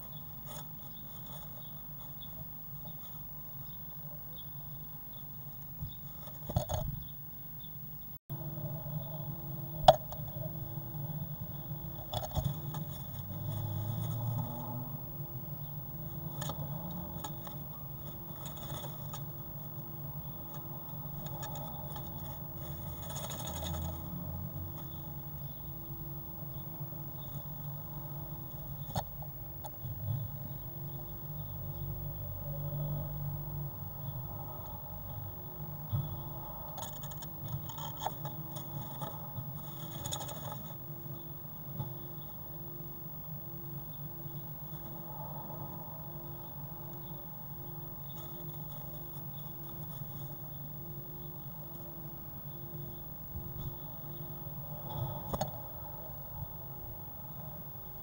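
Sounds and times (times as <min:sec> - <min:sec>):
bird scratching nest lining: 0:00.0 - 0:03.4, 0:05.6 - 0:07.1, 0:11.5 - 0:15.0, 0:16.0 - 0:25.7, 0:26.5 - 0:30.2, 0:36.0 - 0:42.3, 0:48.0 - 0:52.0, 0:54.8 - 0:55.6
low steady hum: 0:00.0 - 0:58.0.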